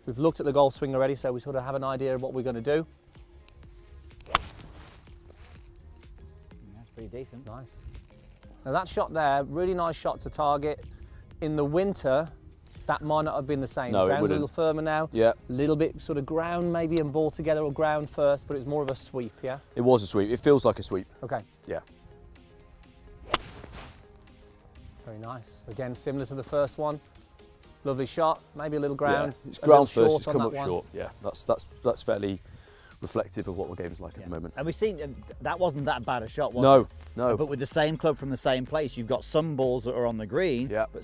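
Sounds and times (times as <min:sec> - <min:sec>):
golf club striking ball: 0:04.1 - 0:05.0, 0:23.1 - 0:24.4.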